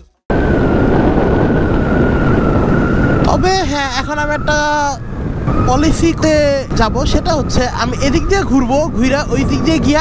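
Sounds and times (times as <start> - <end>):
wind rushing over microphone: 0.3 - 10.0.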